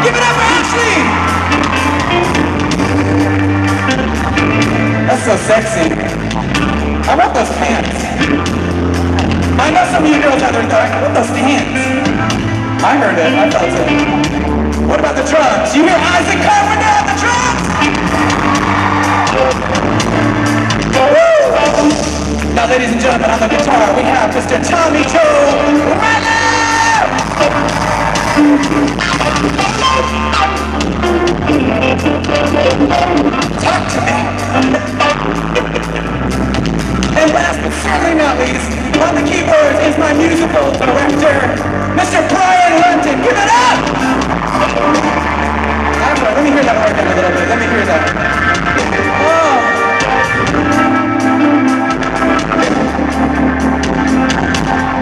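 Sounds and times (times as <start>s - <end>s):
faint crowd noise: 0.0s - 55.0s
live rock band playing: 0.0s - 55.0s.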